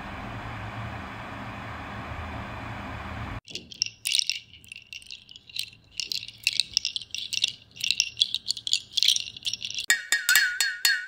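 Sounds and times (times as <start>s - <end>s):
high rattling: 3.4s - 11.0s.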